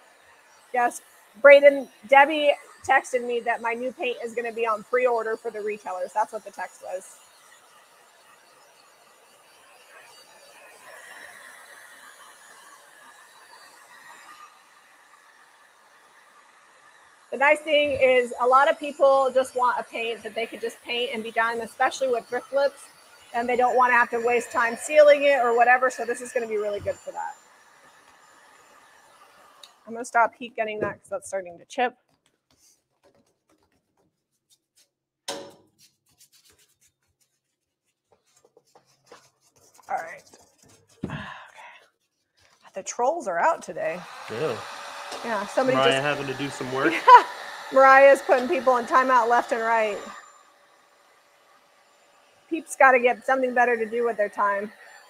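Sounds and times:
heat gun whine: 0.0s - 31.2s, 35.3s - 35.6s, 42.8s - 55.0s.

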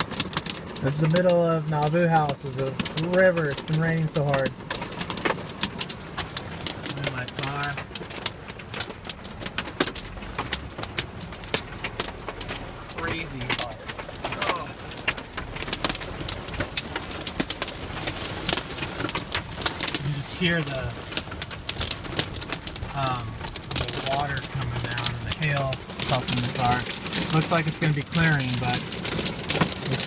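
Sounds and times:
rain and hail drumming on car roof: 0.0s - 30.0s.

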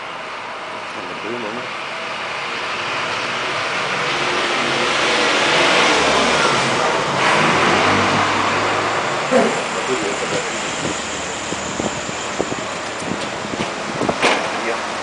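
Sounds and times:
bus driving past: 0.0s - 15.0s.

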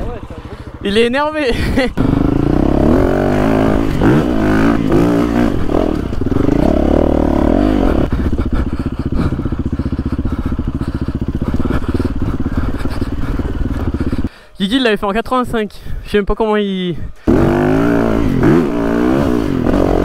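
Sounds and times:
motorcycle engine revving: 0.0s - 14.3s, 17.2s - 20.0s.

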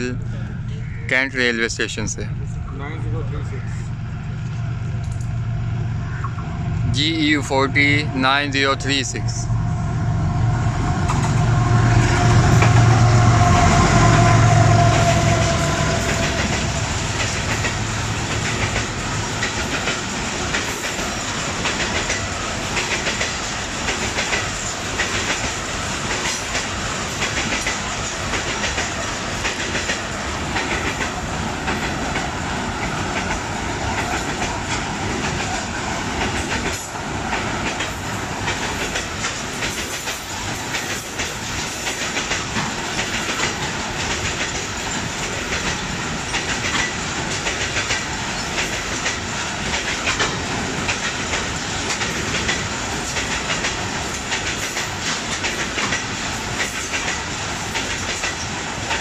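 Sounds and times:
locomotive engine hum and whine: 0.0s - 1.1s, 2.0s - 22.9s
wheels clacking over rail joints: 12.0s - 59.0s.

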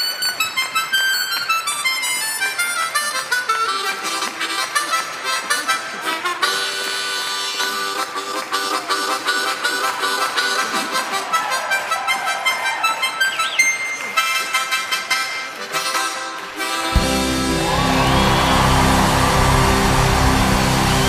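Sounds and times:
harmonica played fast: 0.0s - 21.0s.

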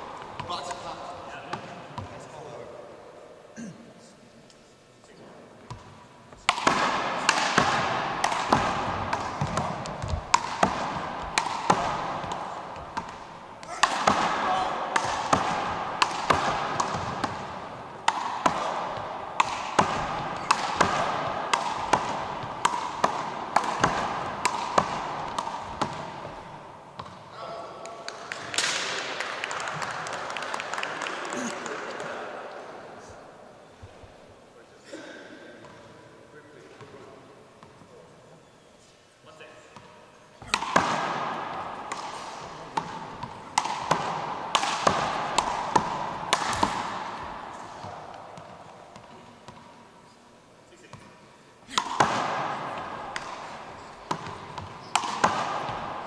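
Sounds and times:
voices: 11.7s - 17.4s.

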